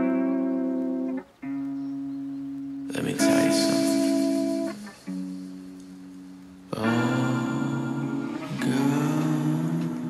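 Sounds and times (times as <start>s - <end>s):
guitar with effects playing chords: 0.0s - 10.0s.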